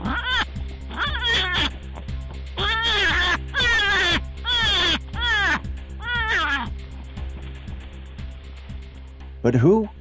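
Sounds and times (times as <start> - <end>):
person shrieking: 0.0 - 1.7, 2.6 - 6.7
background music: 0.0 - 10.0.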